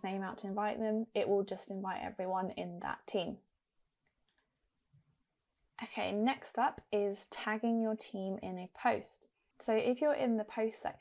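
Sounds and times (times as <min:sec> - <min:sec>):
computer mouse click: 0:04.0 - 0:04.5.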